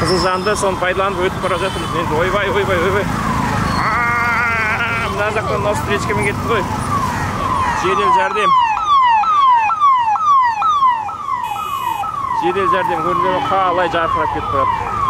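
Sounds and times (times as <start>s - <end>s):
ambulance siren wailing: 0.0s - 15.0s
street traffic rumble: 0.0s - 15.0s.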